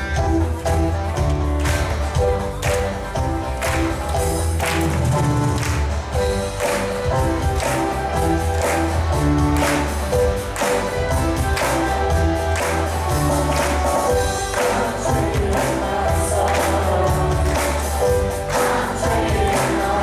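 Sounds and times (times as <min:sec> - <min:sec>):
live band playing upbeat song: 0:00.0 - 0:20.0
congregation clapping in time: 0:00.5 - 0:20.0.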